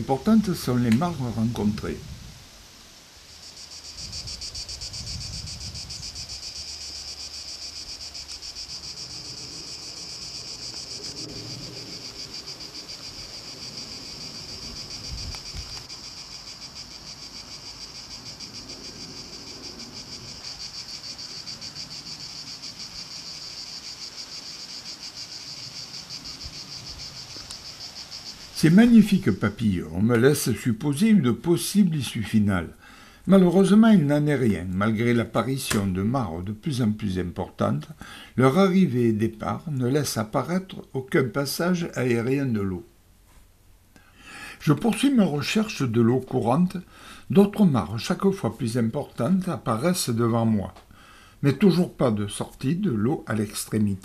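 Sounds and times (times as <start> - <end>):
cicadas shrilling: 0.0 - 42.8.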